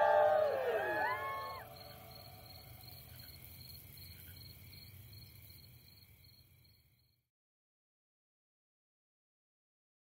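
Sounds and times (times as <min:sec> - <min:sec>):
insects chirping: 0:00.0 - 0:07.2.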